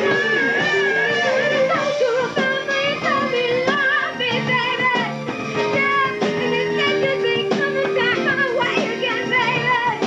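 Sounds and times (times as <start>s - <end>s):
lead singer singing: 0.0s - 10.0s
rock band playing: 0.0s - 10.0s.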